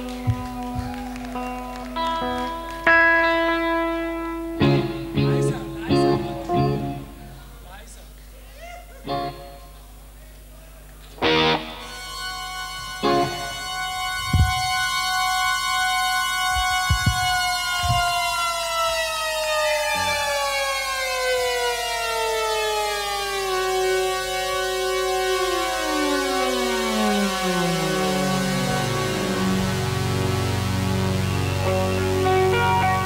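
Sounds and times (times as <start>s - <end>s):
synthesizer stabs and sliding chord: 11.3s - 33.0s
low thuds: 14.2s - 15.0s, 16.5s - 18.4s.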